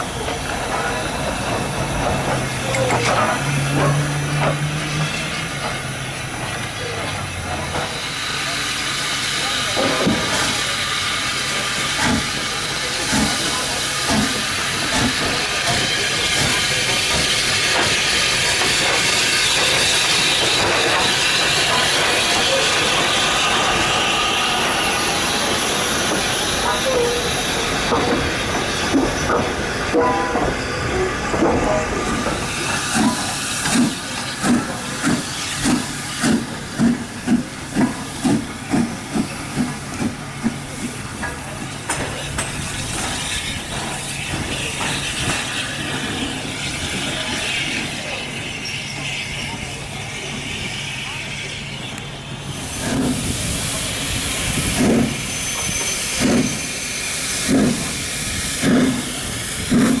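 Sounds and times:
steam hissing: 0.0s - 60.0s
steam locomotive exhaust chuffs: 0.0s - 60.0s.

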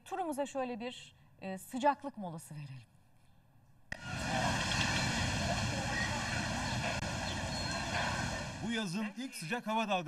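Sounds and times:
faint distant voices: 4.0s - 8.7s
steady rushing din: 4.0s - 8.8s.

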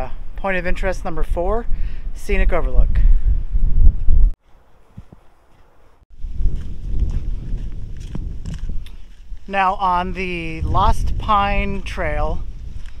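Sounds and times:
wind buffeting microphone: 1.3s - 4.4s, 6.1s - 13.0s
footsteps on dirt trail: 4.4s - 10.6s, 12.4s - 13.0s.

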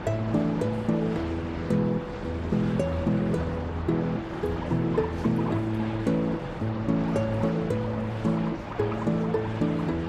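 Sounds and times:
background music of held notes: 0.0s - 10.0s.

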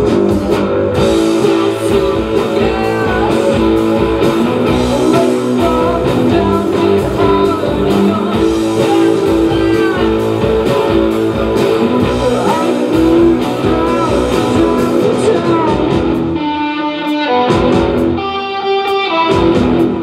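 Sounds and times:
bass guitar: 0.0s - 20.0s
drums: 0.0s - 20.0s
electric guitars: 0.0s - 20.0s.

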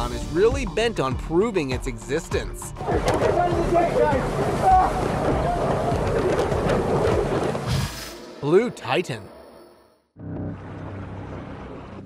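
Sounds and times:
rushing water: 2.7s - 8.6s.

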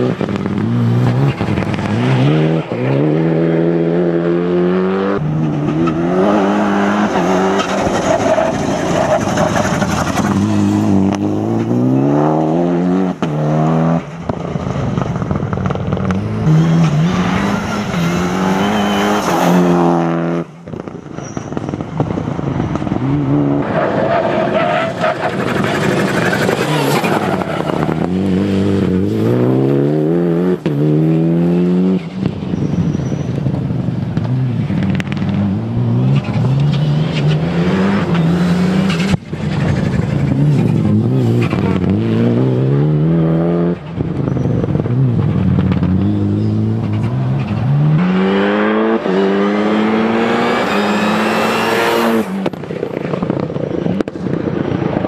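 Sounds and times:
rally car engine accelerating: 34.2s - 53.4s.

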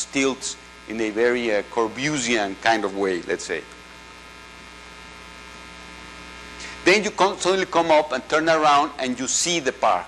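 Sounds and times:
man's voice: 0.0s - 3.7s, 6.8s - 10.0s
electrical mains hum: 0.0s - 10.0s.

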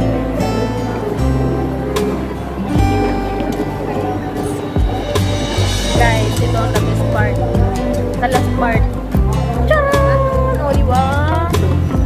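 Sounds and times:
sliding melody line: 0.0s - 11.5s
steady bass beat: 0.0s - 12.0s.

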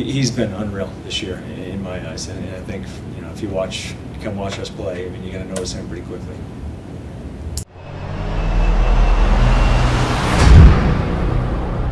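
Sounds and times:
deep rumble: 7.7s - 11.9s
heavy low boom: 7.7s - 11.9s
whoosh: 7.7s - 11.9s.

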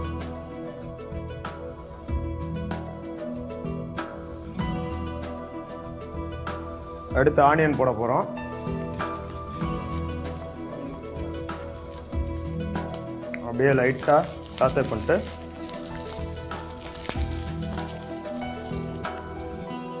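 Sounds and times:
background music: 0.0s - 20.0s
food sizzling in oil: 8.4s - 20.0s
person speaking: 13.4s - 15.4s.

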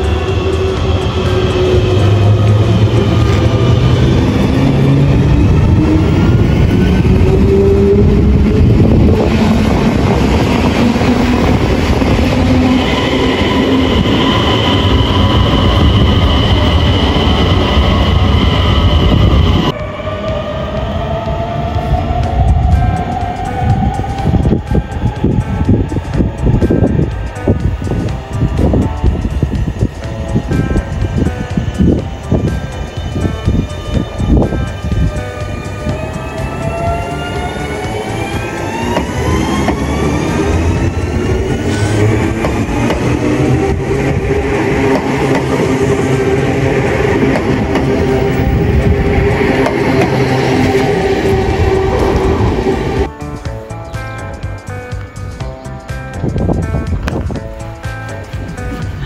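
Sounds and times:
electric train motor whine: 33.5s - 53.1s.

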